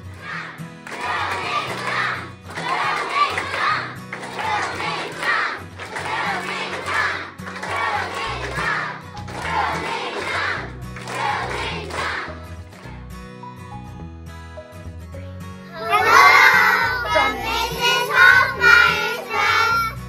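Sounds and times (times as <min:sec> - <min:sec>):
children chanting and shouting: 0:00.0 - 0:12.9, 0:15.7 - 0:20.0
children clapping: 0:00.0 - 0:13.0, 0:15.8 - 0:19.8.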